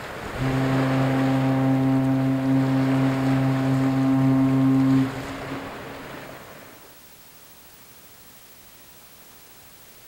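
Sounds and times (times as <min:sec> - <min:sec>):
ship's horn deep blast: 0:00.2 - 0:06.8.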